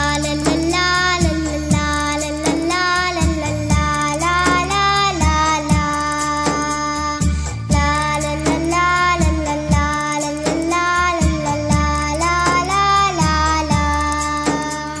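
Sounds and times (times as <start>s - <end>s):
high voice singing: 0.0s - 15.0s
steady low beat: 0.0s - 15.0s
sustained accompaniment: 0.0s - 15.0s.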